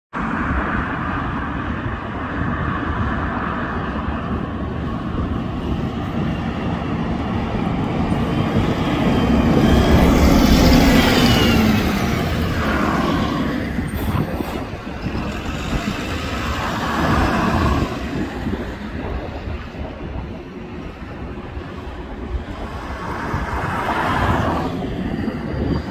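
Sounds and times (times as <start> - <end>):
traffic noise: 0.1 - 25.9
bus passing by: 0.2 - 25.9.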